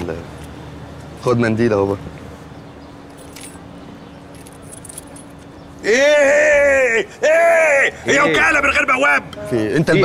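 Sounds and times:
small metal objects jingling: 0:03.1 - 0:03.7, 0:04.3 - 0:05.4.

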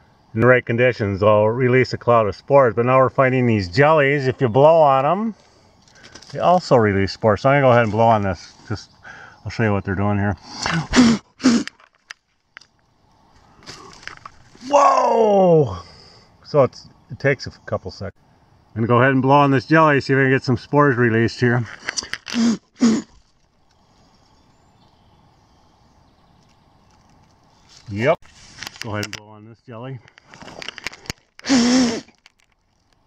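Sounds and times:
quiet woodland ambience: 0:00.0 - 0:33.0.

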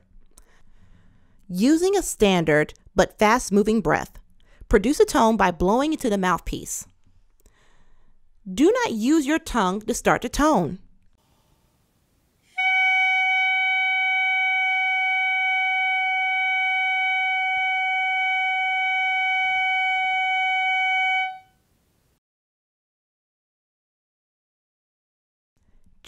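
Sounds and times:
clarinet mouthpiece steady tone: 0:12.4 - 0:21.7.

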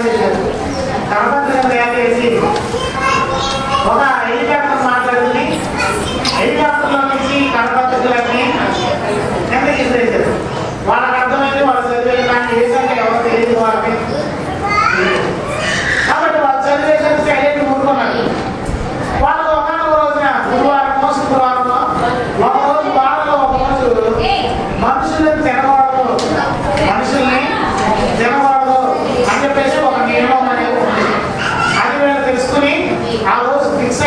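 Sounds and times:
man preaching into a microphone: 0:00.0 - 0:02.7, 0:03.5 - 0:14.2, 0:15.0 - 0:18.4, 0:19.2 - 0:34.0
children's voices: 0:00.0 - 0:34.0
man's amplified speech: 0:00.0 - 0:34.0.

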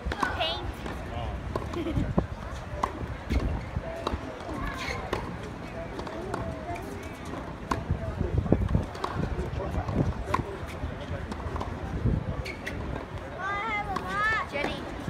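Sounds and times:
tennis balls struck: 0:00.0 - 0:01.8, 0:02.8 - 0:04.5, 0:07.2 - 0:07.9
spectators chatting: 0:00.0 - 0:15.0.

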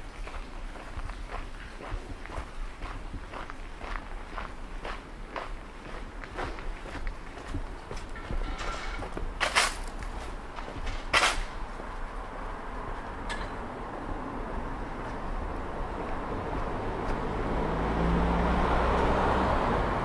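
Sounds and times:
footsteps on paving: 0:00.0 - 0:11.6, 0:16.0 - 0:17.3.

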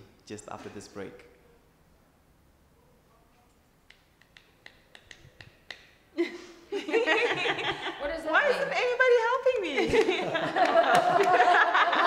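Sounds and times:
person clapping hands: 0:03.9 - 0:05.9, 0:09.6 - 0:11.5.

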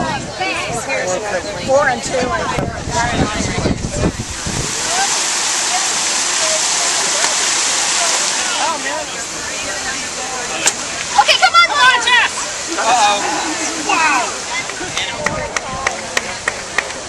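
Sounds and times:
fountain water splashing: 0:00.0 - 0:17.0
people calling out loudly: 0:11.1 - 0:15.2.

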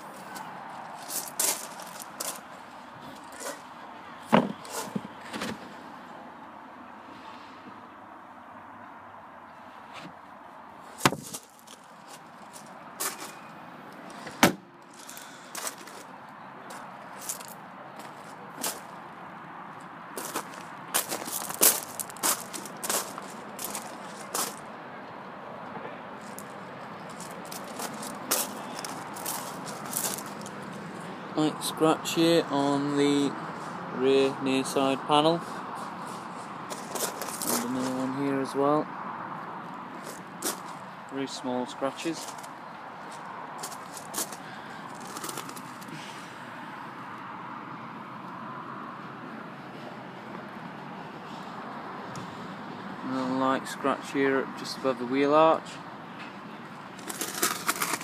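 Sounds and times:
footsteps on gravel: 0:00.0 - 0:02.5, 0:11.0 - 0:13.4, 0:14.9 - 0:16.1, 0:16.7 - 0:19.0, 0:20.2 - 0:24.7, 0:26.2 - 0:31.0, 0:35.8 - 0:38.2, 0:40.0 - 0:40.8, 0:42.0 - 0:46.1, 0:57.0 - 0:58.0
car tailgate being shut: 0:14.2 - 0:14.6.

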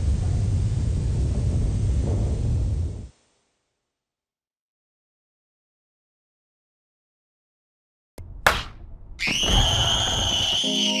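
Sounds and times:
low rumble: 0:00.0 - 0:03.2, 0:08.2 - 0:09.2.

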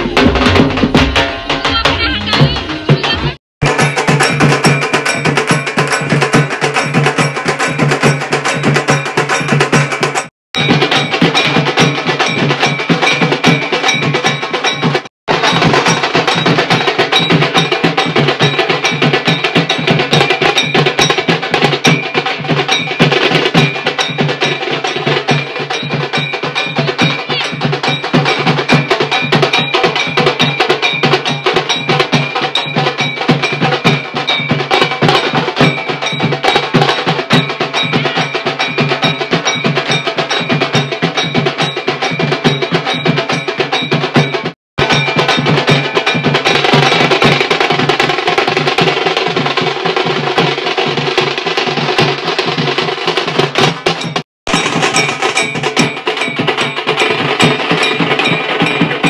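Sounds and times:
music with fast percussion beat: 0:00.0 - 0:59.0.

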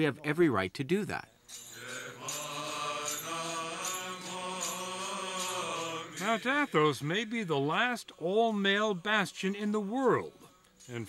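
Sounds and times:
male voices chanting: 0:01.8 - 0:10.4.

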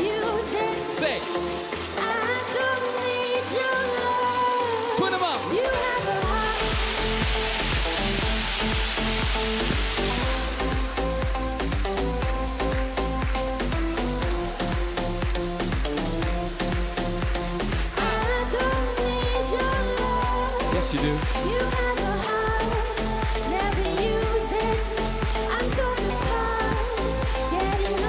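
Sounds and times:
woman singing: 0:00.0 - 0:07.8, 0:17.8 - 0:28.0
dance-pop beat with heavy bass: 0:00.0 - 0:28.0
hissing noise sweep: 0:06.2 - 0:18.8.

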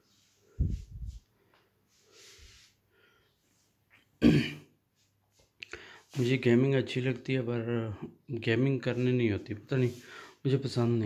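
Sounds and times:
man clearing his throat: 0:04.2 - 0:04.8.

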